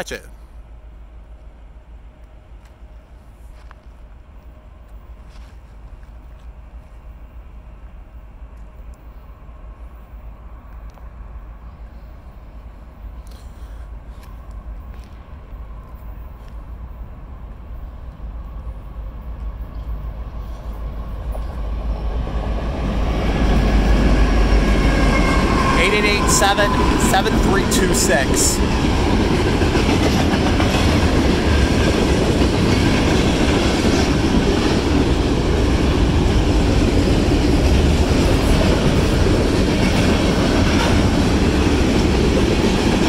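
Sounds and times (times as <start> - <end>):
diesel locomotive engine rumble: 0.0 - 43.0.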